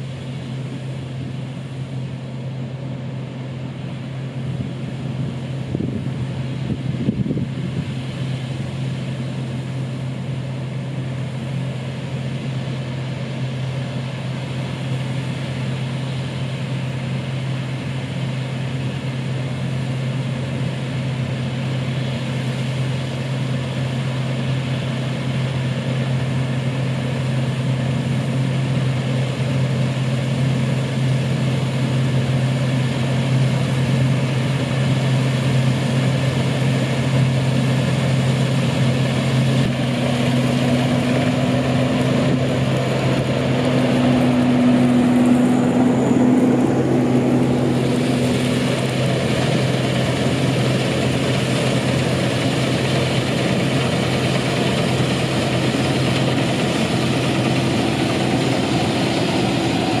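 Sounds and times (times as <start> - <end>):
combine harvester running: 0.0 - 60.0
tractor engine: 0.0 - 60.0.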